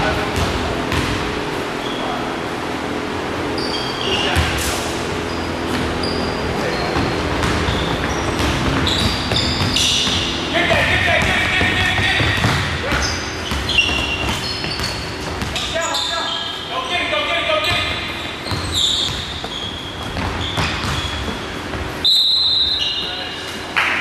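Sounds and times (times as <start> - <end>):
basketball bouncing: 0.1 - 1.4, 5.6 - 15.8, 17.6 - 23.2
sneakers squeaking on court: 0.3 - 2.4, 3.4 - 23.8.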